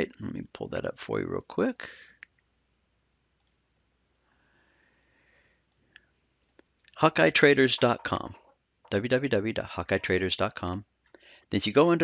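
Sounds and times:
faint computer mouse clicks: 3.4s - 4.3s, 5.7s - 7.0s.

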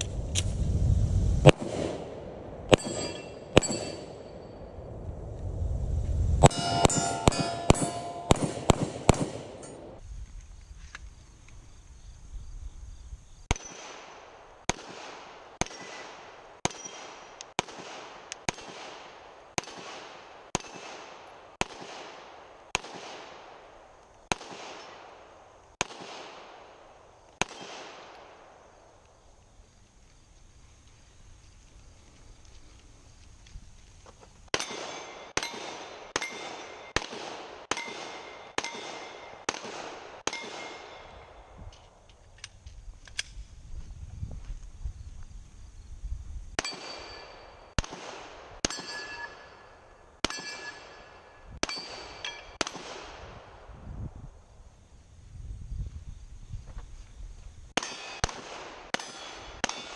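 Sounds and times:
ring of struck steel targets: 2.7s - 4.7s, 6.4s - 10.0s, 34.5s - 37.1s, 37.7s - 41.3s, 46.6s - 47.9s, 48.6s - 52.8s, 57.8s - 59.9s
handgun shots: 6.4s - 10.0s, 34.6s - 41.0s.

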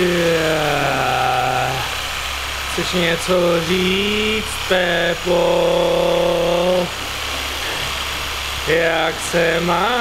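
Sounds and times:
massage gun buzzing: 0.0s - 10.0s.

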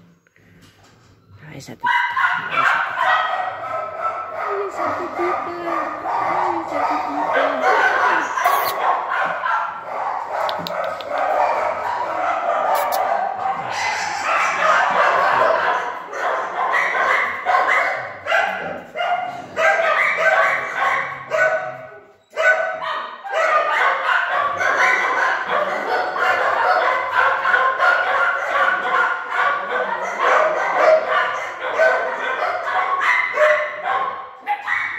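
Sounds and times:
dogs barking and yelping: 1.8s - 34.9s.

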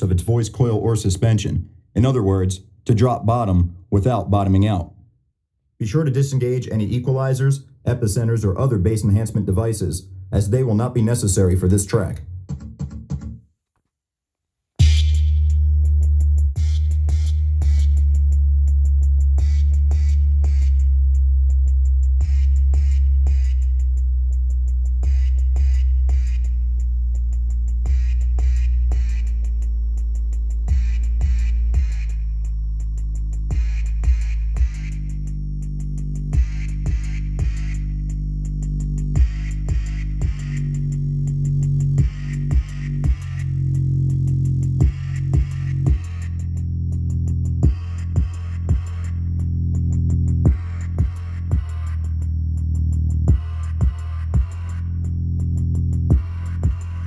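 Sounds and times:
electronic beat: 10.4s - 13.4s, 14.8s - 57.0s
deep bass notes: 14.8s - 57.0s.

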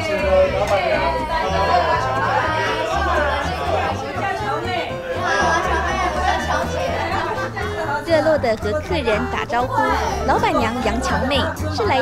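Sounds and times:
background music with bass line: 0.0s - 12.0s
people chattering: 0.0s - 12.0s
woman greeting: 7.9s - 12.0s.

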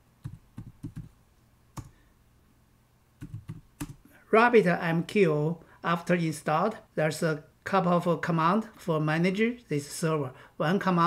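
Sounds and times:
computer keyboard keystrokes: 0.2s - 1.1s, 3.2s - 4.0s.

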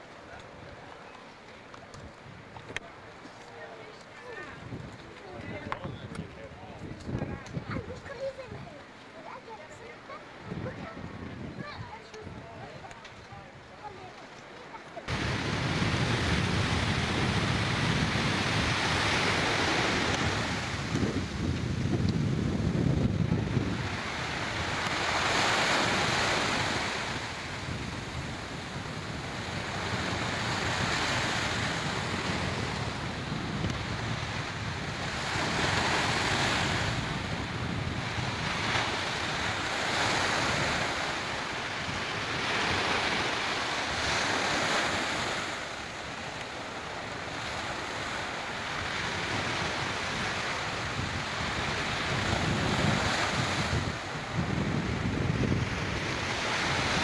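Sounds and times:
ocean surf breaking: 0.0s - 57.0s
wind buffeting microphone: 4.3s - 14.1s, 15.1s - 57.0s.

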